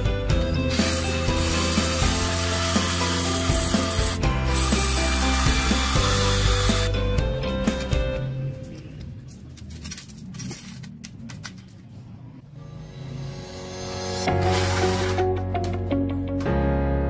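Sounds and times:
background music: 0.0s - 9.3s, 12.4s - 17.0s
electric drill boring into metal: 0.7s - 6.9s, 14.3s - 15.2s.

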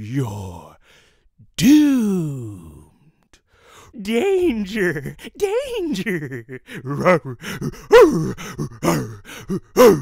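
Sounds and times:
man yelling and groaning: 1.6s - 2.9s, 6.8s - 10.0s.

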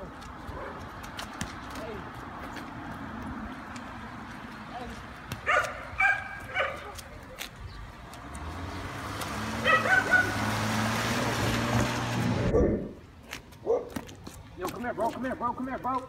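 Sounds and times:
low engine hum of passing vehicle: 0.3s - 13.0s
dog barking: 5.4s - 7.0s, 9.6s - 10.4s, 13.6s - 14.0s.

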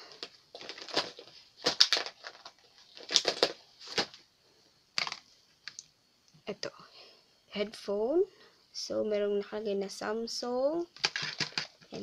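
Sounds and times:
clicks and rustles of handling: 11.0s - 12.0s.

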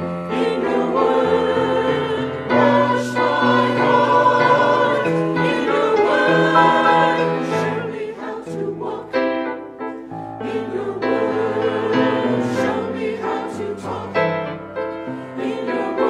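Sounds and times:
church choir singing: 0.0s - 16.0s.

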